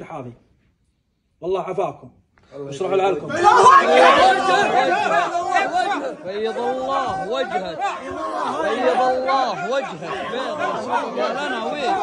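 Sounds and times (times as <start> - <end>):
men talking over one another: 2.6 - 12.0.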